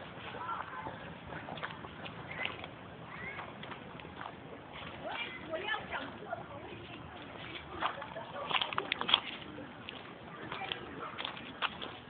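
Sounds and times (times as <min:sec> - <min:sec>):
quiet outdoor background: 0:00.0 - 0:12.0.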